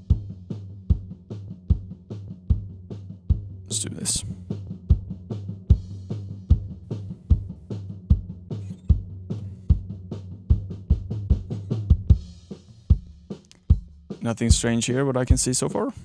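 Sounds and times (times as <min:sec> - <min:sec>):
drum beat: 0:00.0 - 0:15.9.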